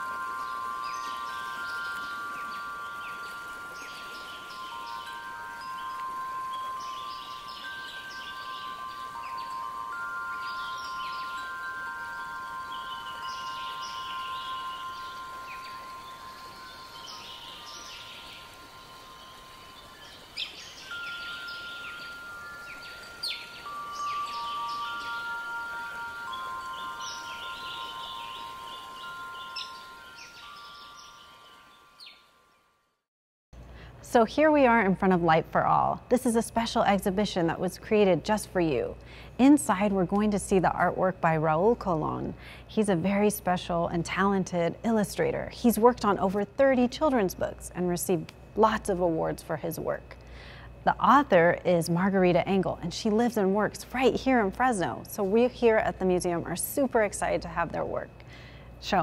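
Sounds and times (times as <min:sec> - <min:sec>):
bird-like chirping: 0:00.0 - 0:32.3
long chime-like tones: 0:00.0 - 0:33.0.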